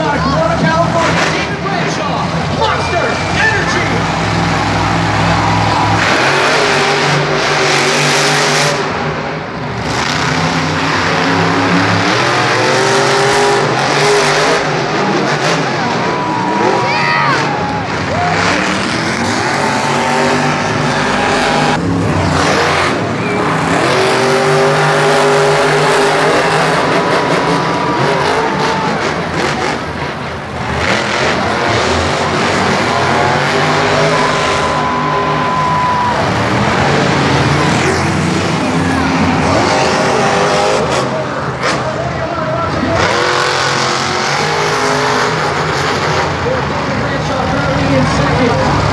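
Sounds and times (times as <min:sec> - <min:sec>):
monster truck engines revving: 0:00.0 - 0:48.9.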